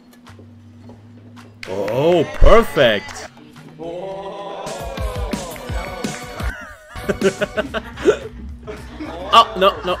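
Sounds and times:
man laughing: 0:06.1 - 0:10.0.

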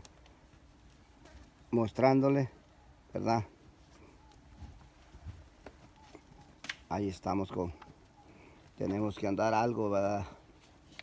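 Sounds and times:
cattle hooves on soft dirt: 0:00.0 - 0:11.0.

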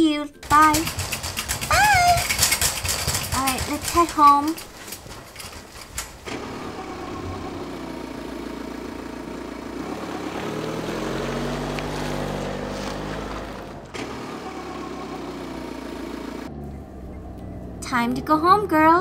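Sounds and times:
car driving past: 0:06.3 - 0:18.2.

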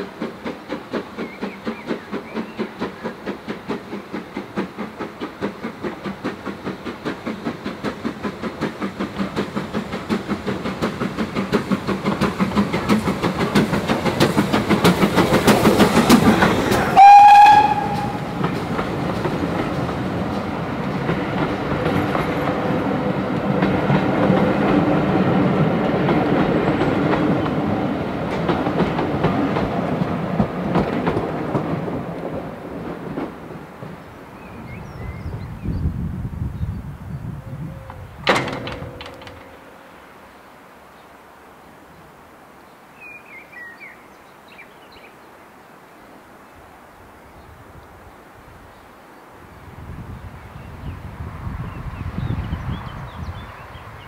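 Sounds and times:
coaches clattering on rails: 0:00.0 - 0:35.7, 0:37.7 - 0:40.3
steam locomotive exhaust beating: 0:00.0 - 0:40.3
short train whistle blast: 0:16.9 - 0:18.4.

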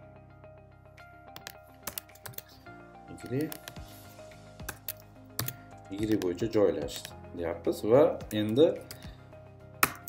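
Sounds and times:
background music: 0:00.0 - 0:10.0
keyboard typing clicks: 0:01.4 - 0:02.6, 0:04.6 - 0:07.1.

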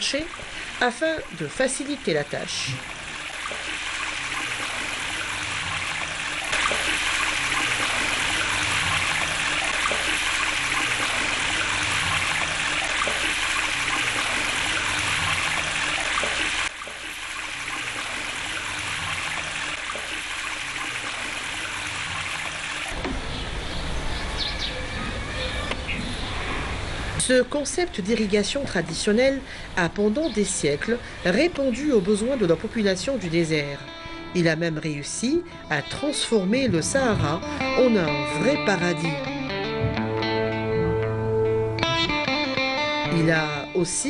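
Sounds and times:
water pouring and splashing: 0:00.0 - 0:23.2.

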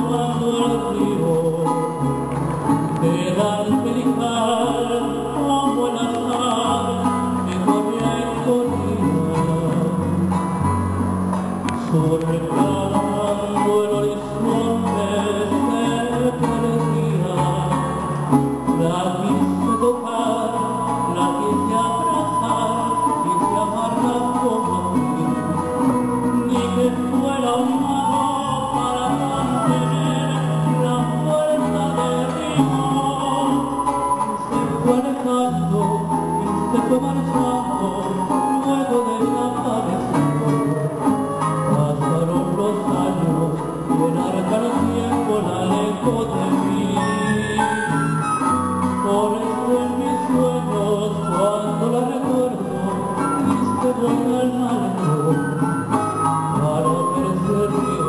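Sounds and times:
bass line: 0:00.0 - 0:58.0
flute melody: 0:00.0 - 0:58.0
small four-string guitar strumming: 0:00.0 - 0:58.0.

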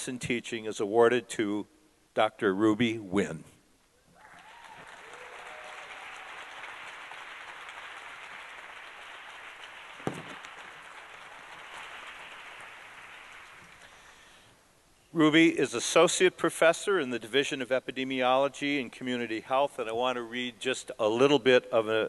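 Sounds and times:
audience applauding: 0:04.2 - 0:13.9
sharp knock: 0:10.0 - 0:10.4.

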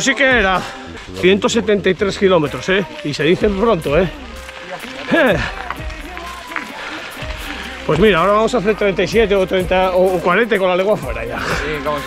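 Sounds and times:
quiet background music: 0:00.0 - 0:12.0
man exclaiming: 0:11.2 - 0:12.0.

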